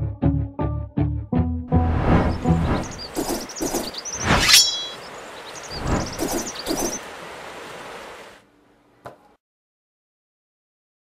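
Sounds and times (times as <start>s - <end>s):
sharp swishes: 1.9s - 5.0s, 5.8s - 7.0s
birds chirping: 1.9s - 8.4s.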